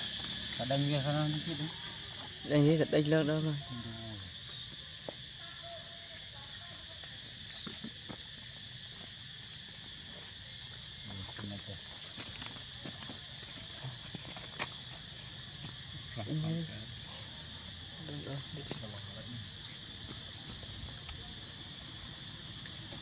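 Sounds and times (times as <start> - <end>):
high-pitched insect drone: 0.0 - 23.0.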